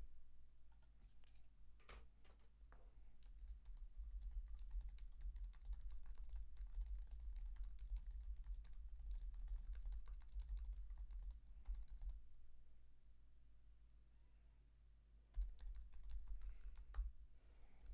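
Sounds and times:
typing on computer keyboard: 3.2 - 12.2, 15.3 - 17.1.

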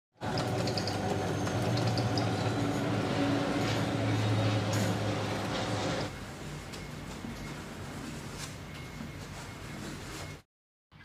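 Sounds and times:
drill press motor hum: 0.2 - 6.1.

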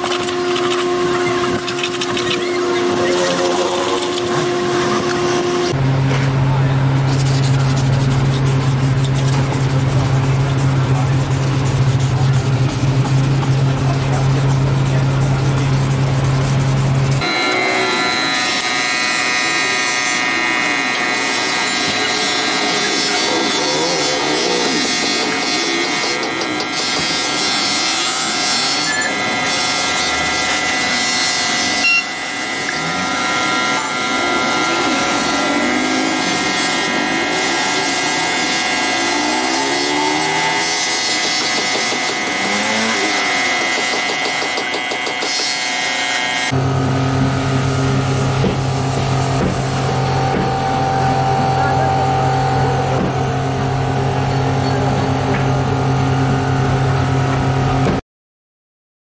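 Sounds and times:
buffing wheel rubbing plastic: 0.0 - 5.8, 7.0 - 45.6, 48.0 - 51.2
bench buffer running: 0.0 - 58.0.

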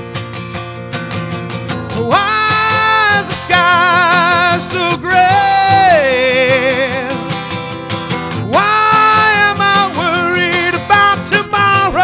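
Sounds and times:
acoustic guitar strumming: 0.0 - 12.0
man singing: 1.9 - 7.5, 8.4 - 12.0.

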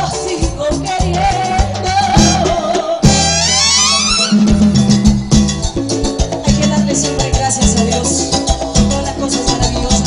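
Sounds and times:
band playing dance music: 0.0 - 10.0
drums and percussion: 0.0 - 10.0
steady bass line: 0.0 - 10.0.

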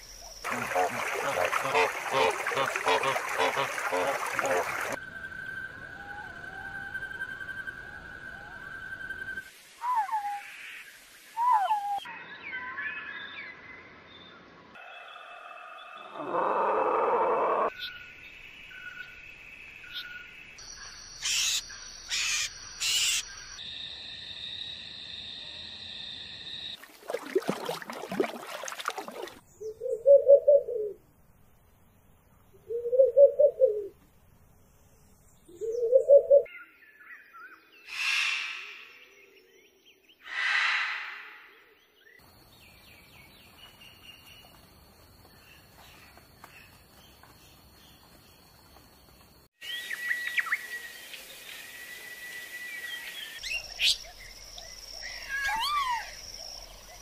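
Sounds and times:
low hooting bird calls: 0.5 - 10.6, 29.6 - 31.0, 32.5 - 34.0, 35.5 - 36.5
bird chirps and whistles: 5.1 - 10.5, 11.4 - 12.1, 49.6 - 51.2.

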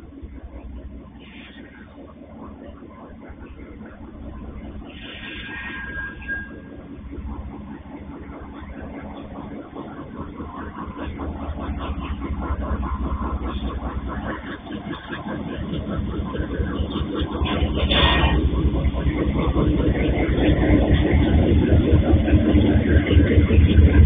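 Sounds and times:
freight train passing: 0.0 - 24.0.

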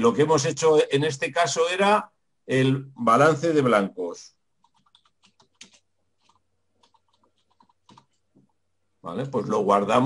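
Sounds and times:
computer keyboard keystrokes: 4.6 - 8.2.

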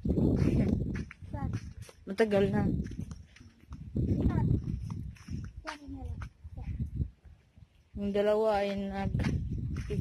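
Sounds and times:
footsteps: 0.0 - 6.7, 8.5 - 10.0.

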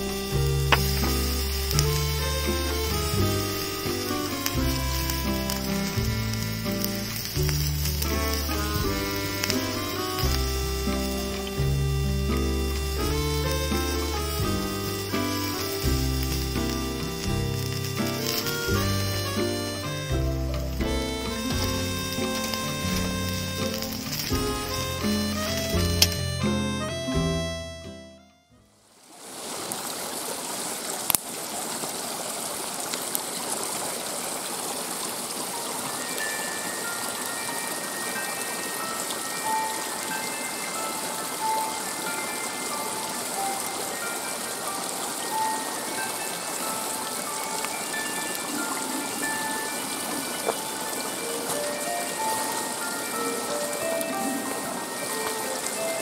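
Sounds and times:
rain falling in forest: 0.0 - 28.0, 28.7 - 56.0
gentle background music: 0.0 - 28.7, 35.7 - 56.0.

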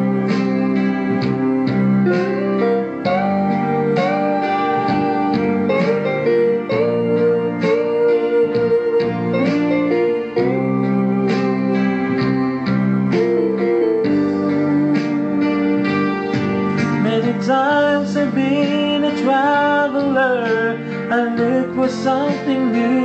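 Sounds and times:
lead guitar holding long notes: 0.0 - 23.0
plucked guitar accompaniment: 0.0 - 23.0.

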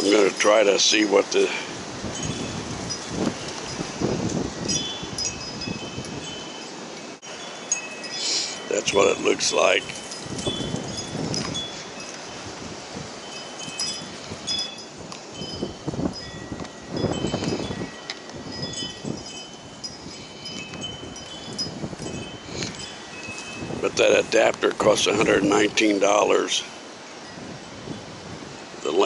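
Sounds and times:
wind chimes ringing: 0.0 - 29.0.

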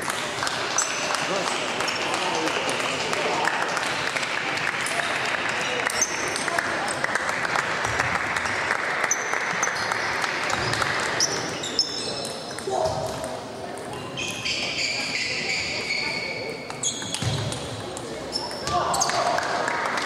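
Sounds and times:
murmur of voices: 0.0 - 20.0
shoes squeaking on floor: 9.0 - 13.0, 14.0 - 17.6, 18.2 - 19.2.

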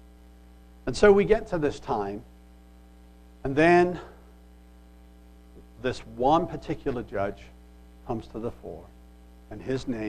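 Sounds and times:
electrical mains hum: 0.0 - 10.0
man speaking: 0.9 - 2.3, 3.5 - 4.2, 5.8 - 8.9, 9.5 - 10.0.

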